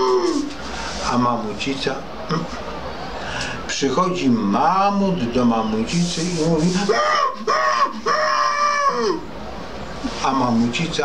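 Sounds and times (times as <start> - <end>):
man making high-pitched calls: 0.0 - 0.5, 6.6 - 9.3.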